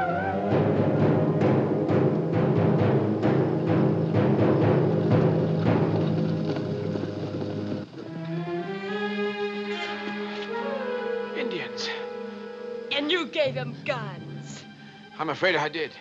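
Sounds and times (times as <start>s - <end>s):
steady drum beat: 0.0s - 6.9s
orchestral film score: 0.0s - 16.0s.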